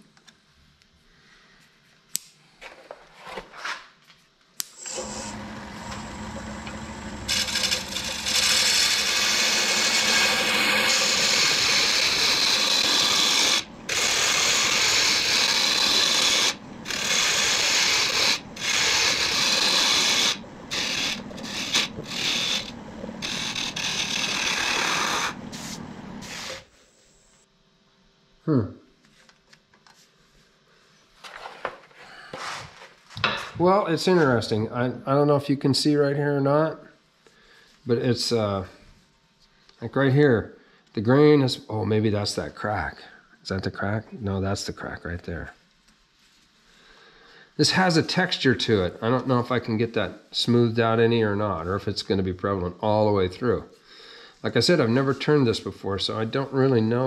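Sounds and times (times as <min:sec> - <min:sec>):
wood lathe tool rasping: 0:04.8 - 0:26.7.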